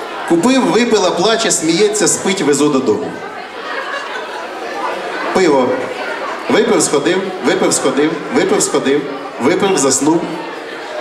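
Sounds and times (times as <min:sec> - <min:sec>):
murmur of audience chatter: 0:00.0 - 0:11.0
audience laughter: 0:03.2 - 0:05.3.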